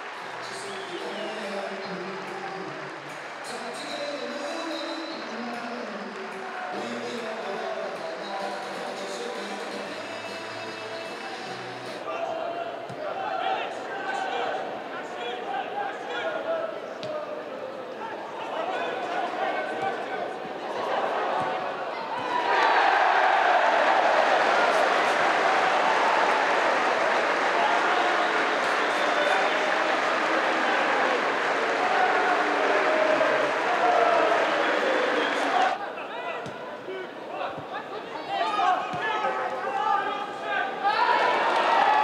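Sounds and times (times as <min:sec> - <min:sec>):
crowd noise: 0:00.0 - 0:42.0
players shouting: 0:18.1 - 0:36.5, 0:38.3 - 0:42.0.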